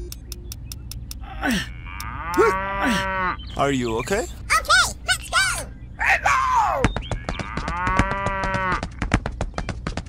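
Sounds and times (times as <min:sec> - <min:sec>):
cow mooing: 0:01.5 - 0:03.5, 0:07.4 - 0:08.9
clip-clop of hoofbeats: 0:06.8 - 0:10.0.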